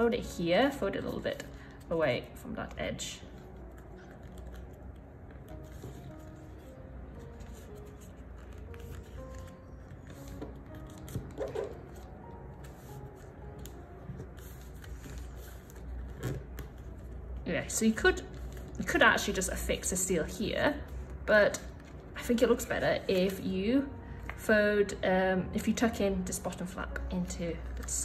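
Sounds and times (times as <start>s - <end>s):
quiet background music: 0.0s - 28.0s
paper folding and rustling: 3.2s - 17.4s, 18.2s - 19.4s.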